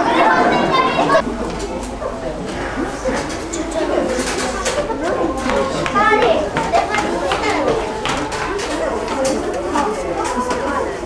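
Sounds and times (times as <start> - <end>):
high child's voice: 0.0 - 1.2, 5.8 - 8.4
children chattering: 0.0 - 11.0.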